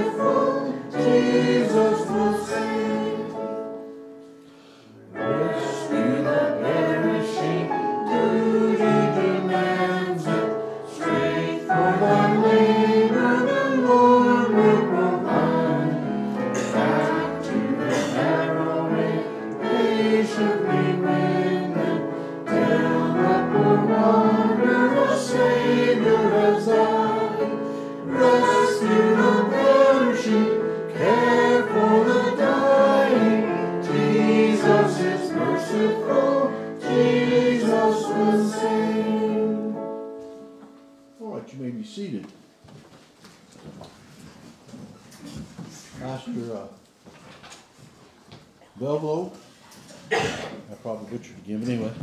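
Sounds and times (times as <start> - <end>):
choir singing a hymn: 0.0 - 40.6.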